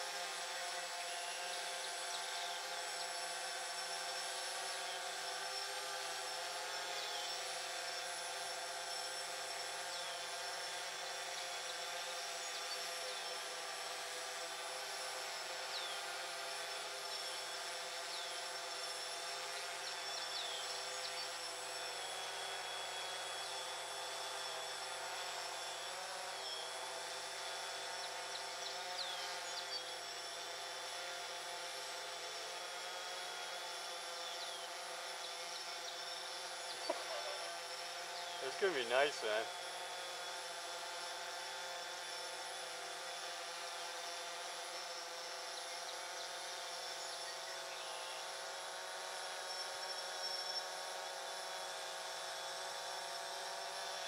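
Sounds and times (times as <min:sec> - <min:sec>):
drone propellers humming: 0:33.9 - 0:40.4.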